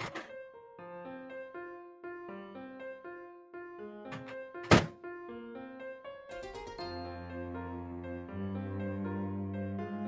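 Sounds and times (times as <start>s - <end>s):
loud thunk on kitchen counter: 4.2s - 5.0s
keyboard music: 6.3s - 10.0s.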